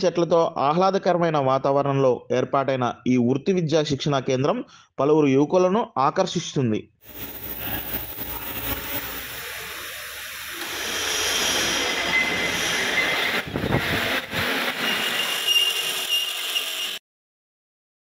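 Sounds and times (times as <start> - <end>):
arc welder crackling hiss: 7.0 - 17.0.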